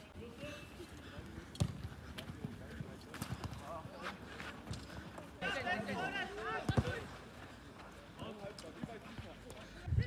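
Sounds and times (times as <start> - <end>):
ball being kicked: 1.6 - 1.9, 6.7 - 7.0.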